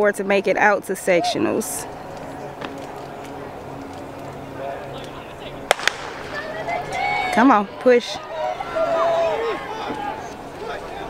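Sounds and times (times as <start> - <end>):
murmur of spectators: 0.0 - 11.0
starter's pistol cracks: 5.7 - 6.3.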